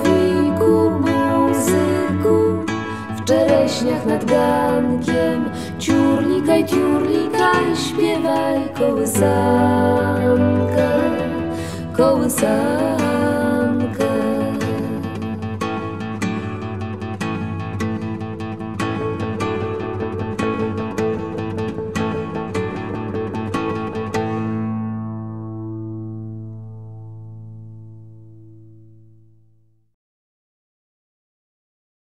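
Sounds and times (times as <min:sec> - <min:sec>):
acoustic guitar picking: 0:00.0 - 0:29.1.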